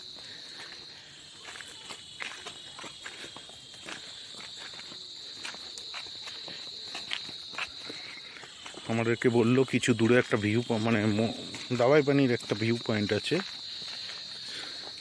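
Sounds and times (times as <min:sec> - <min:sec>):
footsteps on paved road: 0:00.0 - 0:15.0
forest insects droning: 0:00.0 - 0:15.0.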